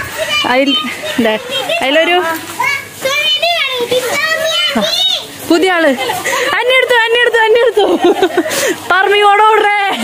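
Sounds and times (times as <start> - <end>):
children calling out and talking: 0.0 - 10.0.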